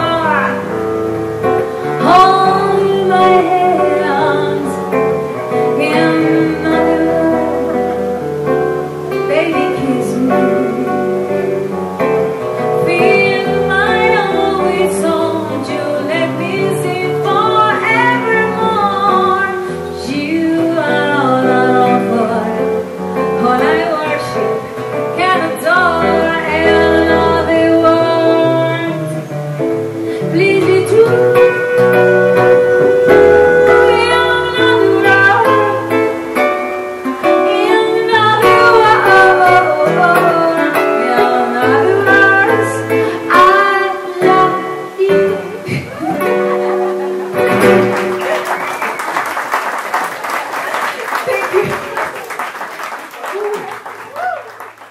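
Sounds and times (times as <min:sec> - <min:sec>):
woman singing into microphone: 0:00.0 - 0:48.0
amplified guitar plucking: 0:00.0 - 0:49.0.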